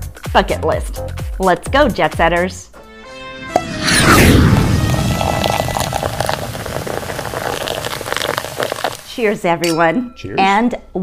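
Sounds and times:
sparkling wine pouring and fizzing: 4.6s - 9.4s.

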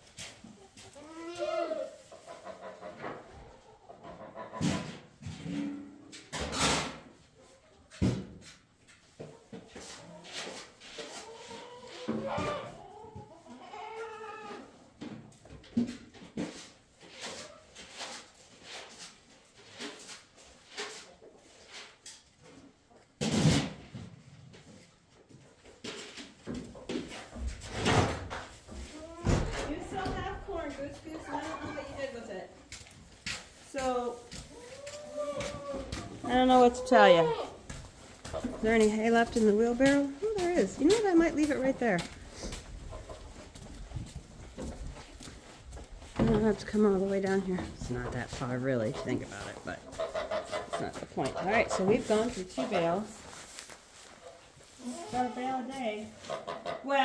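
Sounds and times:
barn animals calling: 34.5s - 37.7s, 48.9s - 53.2s.

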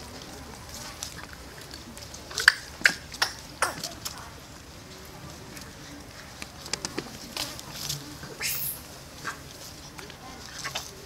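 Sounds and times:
light clicks and scuffles: 0.0s - 11.0s
monkey squealing: 8.4s - 8.8s.

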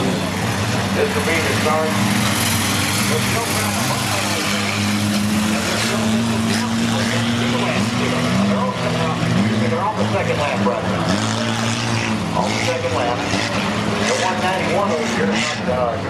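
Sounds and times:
bus engine running hard: 0.0s - 16.0s
racing car engines: 0.0s - 16.0s
voices: 1.0s - 11.3s, 12.2s - 16.0s.

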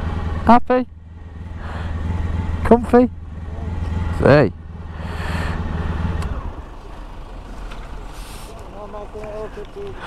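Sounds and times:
motorcycle engine idling: 0.0s - 10.0s
short hiss: 8.0s - 8.7s.

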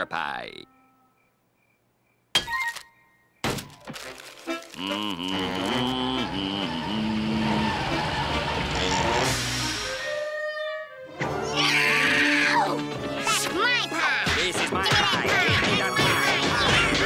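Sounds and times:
cartoon vending machine thunks: 2.3s - 4.0s
cartoon score music: 4.4s - 17.0s.

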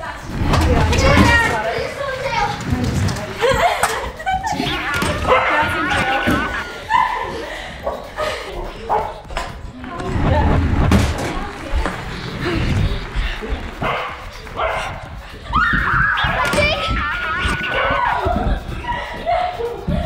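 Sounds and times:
children playing excitedly: 0.0s - 20.0s
heavy thumps: 0.3s - 1.8s, 9.2s - 19.2s
dog barking: 5.2s - 5.7s, 13.8s - 15.0s.

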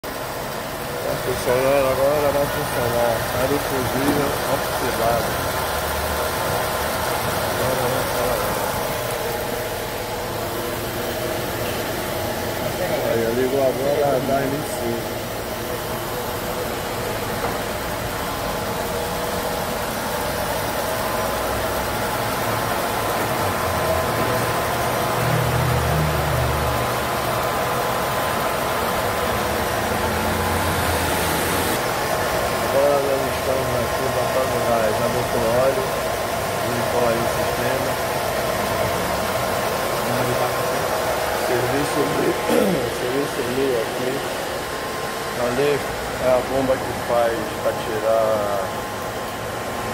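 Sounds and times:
car engine idling: 0.0s - 49.9s.

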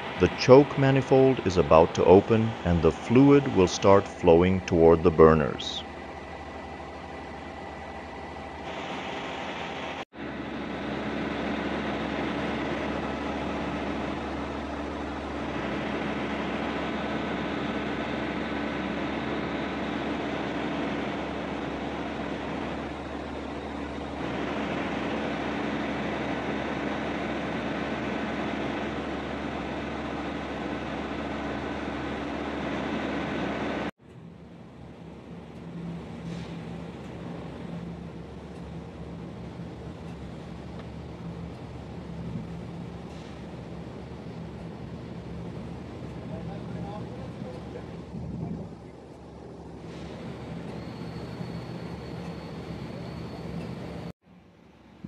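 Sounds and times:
industrial machinery drone: 0.0s - 55.0s.

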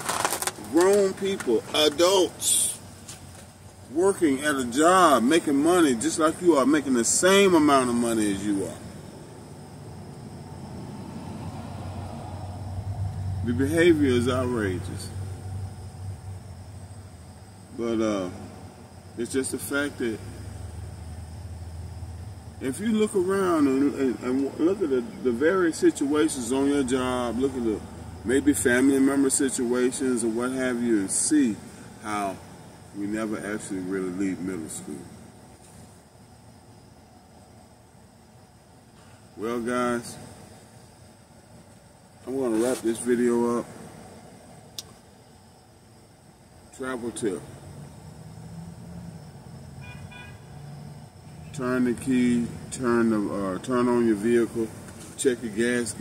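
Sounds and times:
low motor vehicle rumble: 0.0s - 56.0s.

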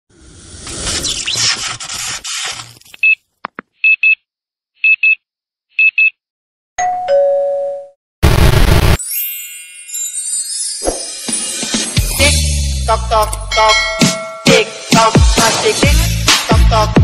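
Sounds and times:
two-note ding-dong chime: 13.5s - 14.7s.

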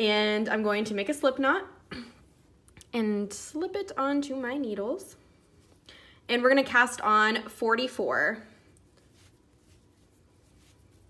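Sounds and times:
soft yarn rustling on needle: 0.0s - 11.0s.

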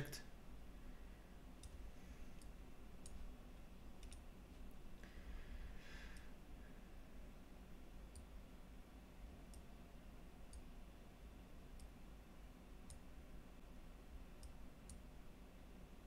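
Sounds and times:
low background hum: 0.0s - 16.0s
faint computer mouse clicks: 1.6s - 1.8s, 2.4s - 3.2s, 4.0s - 4.3s, 11.8s - 12.0s, 12.8s - 13.1s.

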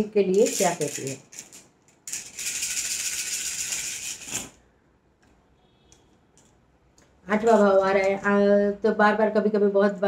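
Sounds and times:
shells rattling in hands: 0.3s - 4.6s.

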